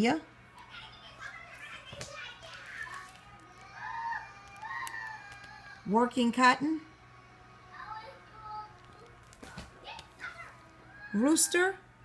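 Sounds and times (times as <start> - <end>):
children's voices: 0.6 - 6.0, 6.6 - 11.7.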